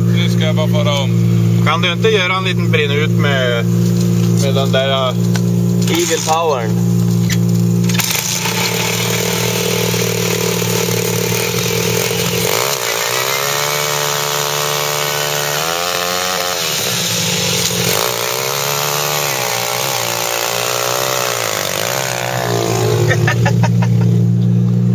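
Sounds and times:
motorbike engine revving: 0:00.0 - 0:24.9.

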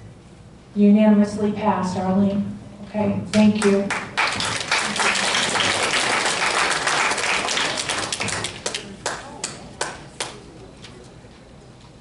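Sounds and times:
audience applause: 0:03.9 - 0:10.4.

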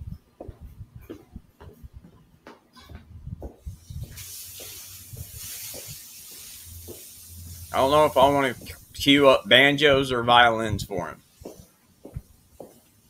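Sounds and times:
light footsteps and knocks: 0:00.0 - 0:13.0
steady high hiss: 0:03.4 - 0:13.0.

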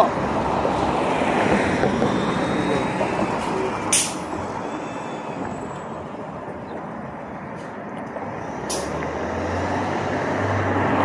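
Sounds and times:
bus passing: 0:00.0 - 0:11.0
street traffic passing: 0:00.0 - 0:11.0.

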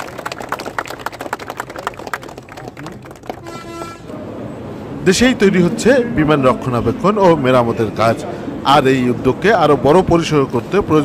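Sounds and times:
people clapping: 0:00.0 - 0:04.2
short horn toot: 0:03.4 - 0:04.2.

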